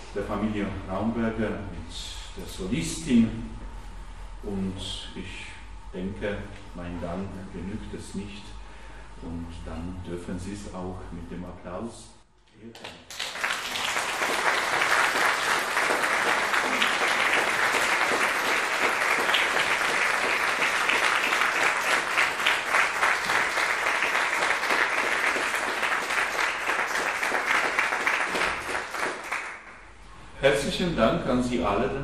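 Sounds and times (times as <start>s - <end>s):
congregation clapping: 12.7s - 29.8s.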